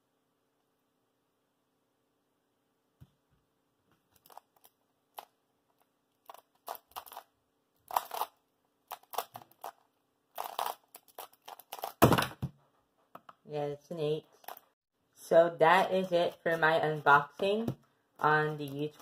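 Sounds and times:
plastic puzzle cube clicking: 7.9 - 9.8, 10.4 - 12.0.

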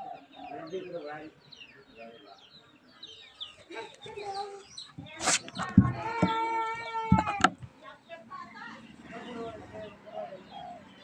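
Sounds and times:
small birds chirping: 0.0 - 11.0
thump: 5.0 - 6.4.

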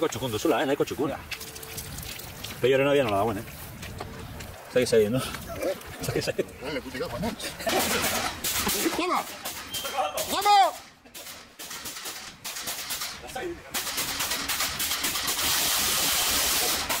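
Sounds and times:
water spraying from hose wand: 0.0 - 6.5, 13.8 - 17.0.

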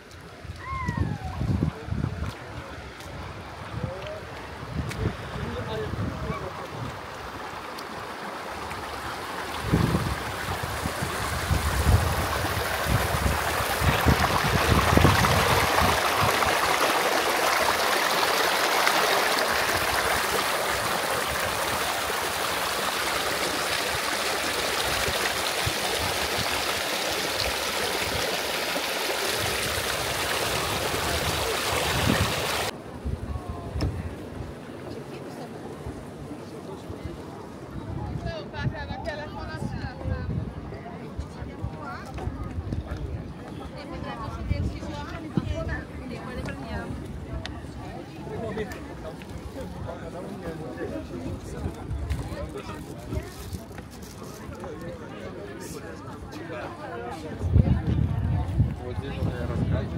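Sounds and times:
water rushing down a channel: 0.0 - 32.8.

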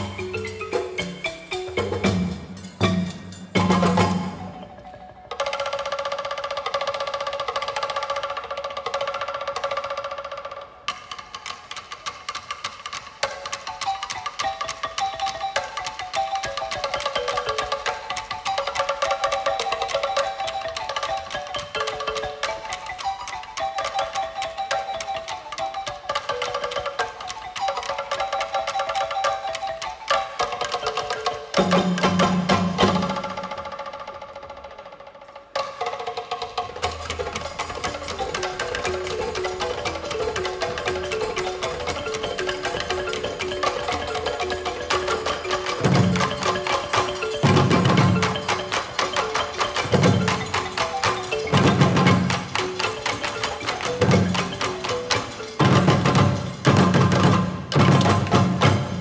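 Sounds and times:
wooden slit drums struck with sticks: 0.0 - 59.0.

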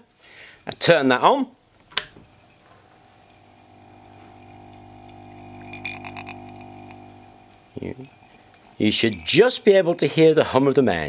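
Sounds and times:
click: 1.9 - 2.2
tin can humming: 2.0 - 10.2.

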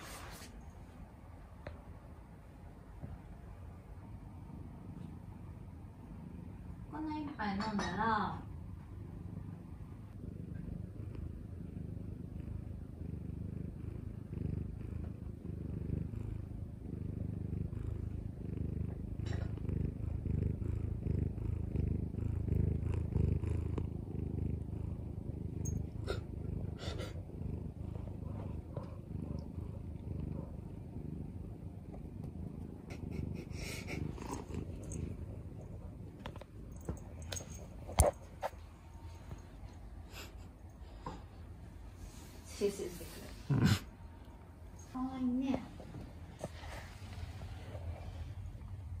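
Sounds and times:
cat purring: 0.0 - 49.0.

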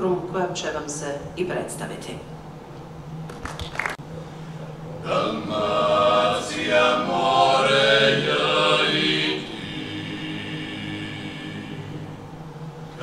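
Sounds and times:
male group singing a cappella: 5.0 - 12.3.

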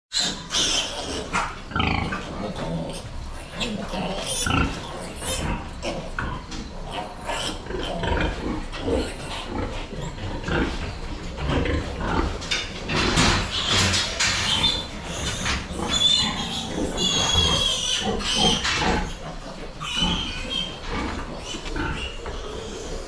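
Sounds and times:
pigs grunting and squealing: 0.1 - 23.0.

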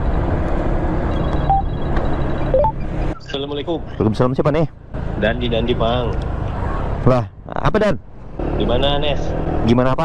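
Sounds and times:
wind: 0.0 - 10.0
phone electronic beeps: 1.2 - 3.2.

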